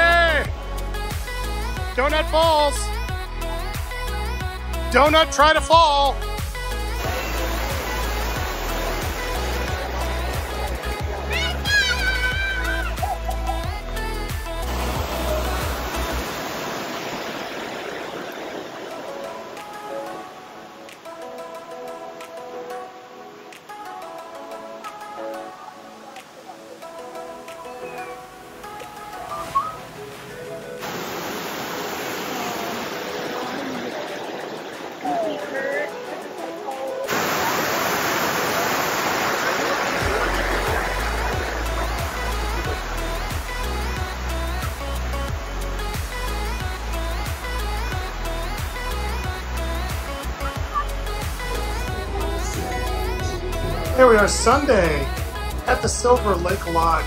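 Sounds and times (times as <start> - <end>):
waterfall rushing over rocks: 0.0 - 57.0
music with deep bass beat: 0.4 - 5.0, 5.6 - 16.2, 40.0 - 57.0.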